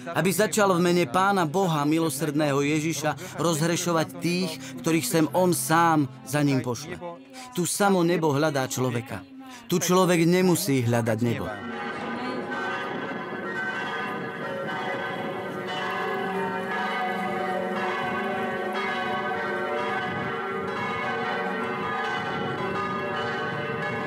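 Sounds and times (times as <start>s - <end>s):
church bells ringing: 0.0s - 6.9s, 9.8s - 24.0s.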